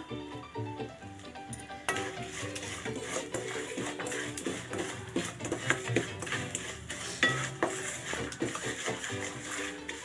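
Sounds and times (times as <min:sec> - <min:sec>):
spatula scraping paste in pan: 0:01.8 - 0:10.0.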